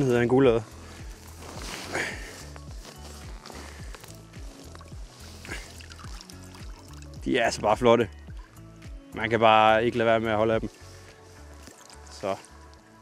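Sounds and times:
background music with steady beat: 0:00.0 - 0:13.0
soft water sound: 0:04.0 - 0:07.6, 0:08.2 - 0:09.0, 0:10.7 - 0:13.0.

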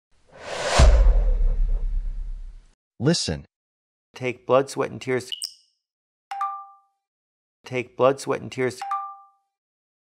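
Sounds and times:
whoosh: 0:00.3 - 0:02.7
deep bass hit: 0:00.6 - 0:02.6.

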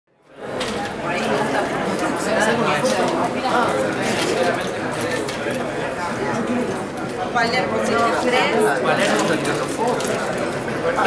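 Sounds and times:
crowd chatter: 0:00.1 - 0:11.0.

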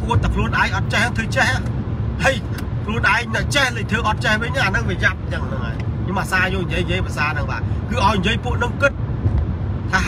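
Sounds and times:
man talking: 0:00.0 - 0:08.9
car low rumble: 0:00.0 - 0:10.0.

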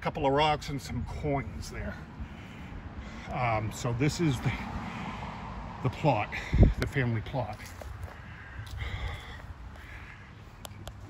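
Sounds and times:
bird cawing: 0:02.2 - 0:03.3, 0:07.8 - 0:10.9.

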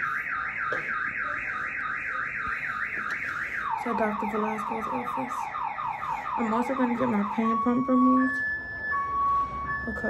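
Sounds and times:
electronic alarm warbling: 0:00.0 - 0:10.0.

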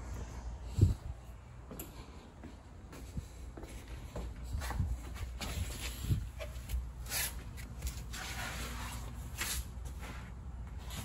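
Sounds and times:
footsteps on concrete floor: 0:01.6 - 0:11.0.

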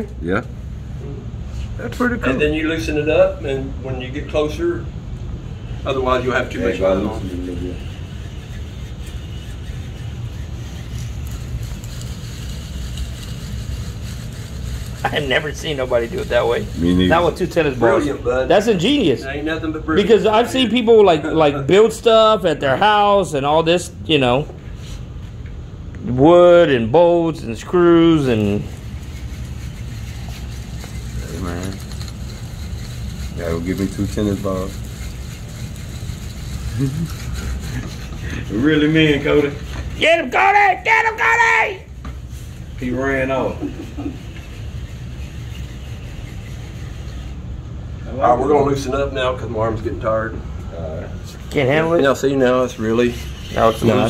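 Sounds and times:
fishing reel cranking: 0:07.8 - 0:17.0, 0:28.4 - 0:38.2
person speaking: 0:15.0 - 0:19.2, 0:30.7 - 0:31.9, 0:51.1 - 0:54.0.

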